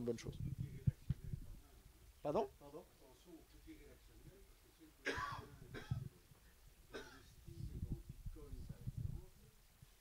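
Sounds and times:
person coughing: 5.1 - 6.1, 6.9 - 7.3.

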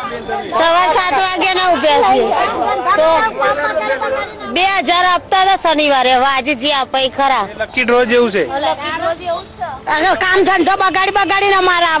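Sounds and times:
people talking at once: 0.0 - 12.0
woman talking: 0.5 - 2.4, 8.6 - 12.0.

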